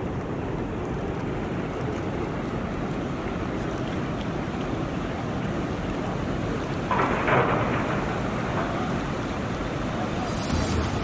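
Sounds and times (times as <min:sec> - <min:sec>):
water rushing from dam outlet: 0:00.0 - 0:11.0.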